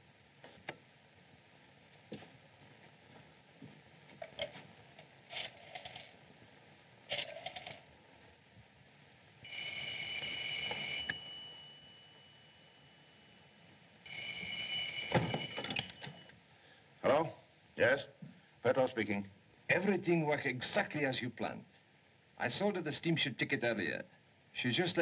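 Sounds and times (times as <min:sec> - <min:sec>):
telephone ringing: 0:09.4 - 0:13.4, 0:14.0 - 0:16.4.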